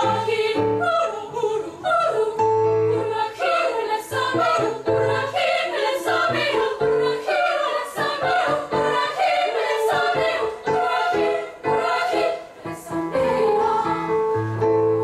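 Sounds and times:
girls' choir singing: 0.0 - 14.3.

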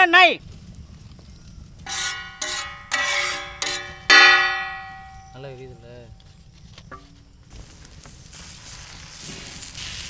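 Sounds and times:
metal spatula scraping a griddle: 1.9 - 5.4.

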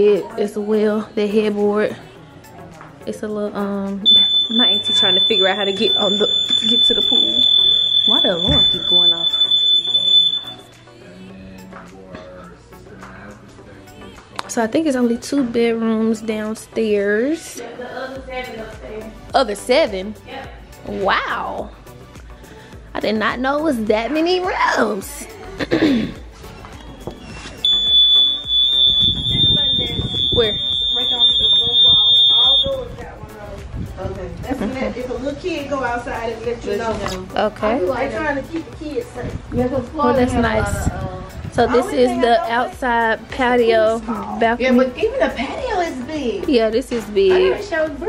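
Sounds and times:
faint background music: 0.0 - 48.0
high-pitched electronic alarm tone: 4.1 - 10.8, 27.6 - 32.8.

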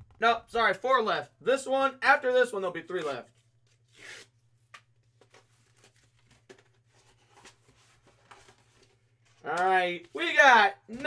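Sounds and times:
paper photo rustling: 5.0 - 10.3.

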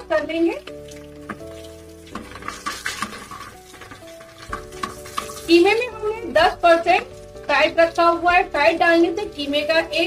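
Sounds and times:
onions sizzling in oil: 0.7 - 9.5
metal ladle scraping a pot: 1.2 - 5.6.

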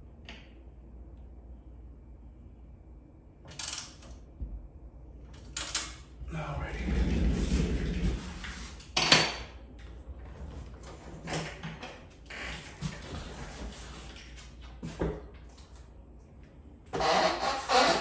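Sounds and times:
rumbling shuffle: 6.2 - 8.8.

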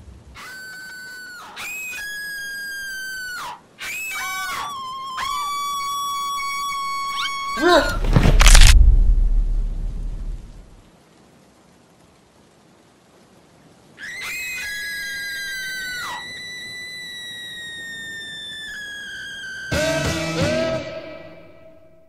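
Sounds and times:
women screaming: 14.0 - 20.2.

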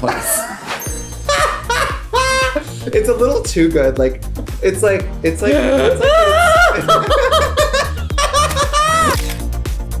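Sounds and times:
music with steady beat: 0.9 - 10.0
people laughing: 1.3 - 2.8, 5.4 - 9.2.

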